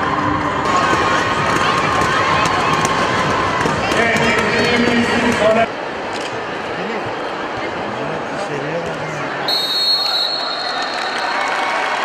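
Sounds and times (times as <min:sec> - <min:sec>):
crowd of voices shouting and chattering: 0:00.0 - 0:12.0.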